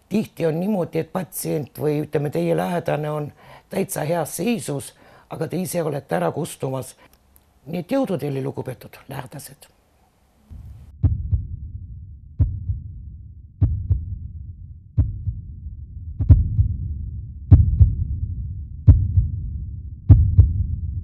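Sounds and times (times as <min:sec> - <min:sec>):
sharp double beat: 0:10.5 - 0:11.8, 0:12.4 - 0:12.9, 0:13.6 - 0:14.2, 0:15.0 - 0:15.4, 0:16.2 - 0:16.9, 0:17.5 - 0:18.1.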